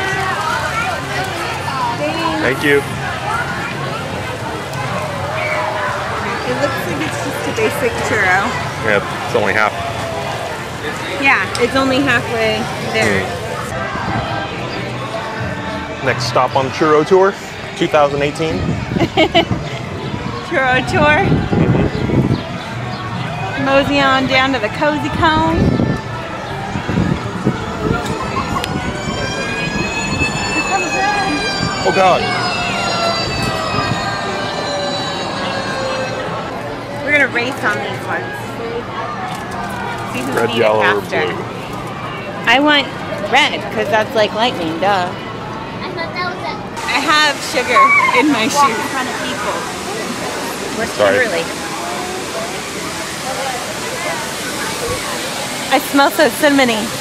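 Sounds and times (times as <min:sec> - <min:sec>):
murmur of people: 0:00.0 - 0:57.0
long high wail: 0:27.4 - 0:37.1
falling water rushing: 0:46.8 - 0:57.0.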